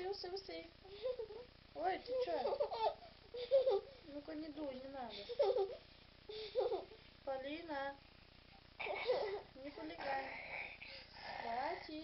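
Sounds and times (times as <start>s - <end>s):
child vocalizing and giggling: 2.1s - 4.0s, 5.2s - 7.0s, 8.8s - 10.6s.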